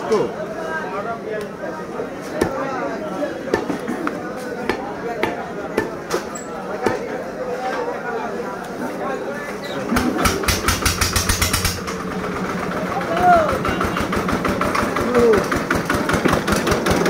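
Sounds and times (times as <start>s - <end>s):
cleaver chopping on wooden block: 4.6s - 6.0s, 6.8s - 7.0s.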